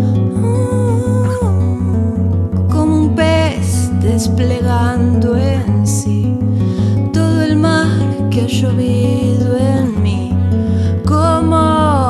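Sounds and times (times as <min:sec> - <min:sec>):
fingerpicked acoustic guitar: 0:00.0 - 0:12.0
person singing: 0:00.0 - 0:12.0.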